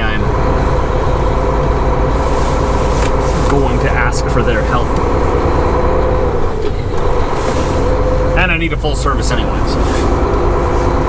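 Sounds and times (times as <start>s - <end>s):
truck diesel engine running: 0.0s - 11.0s.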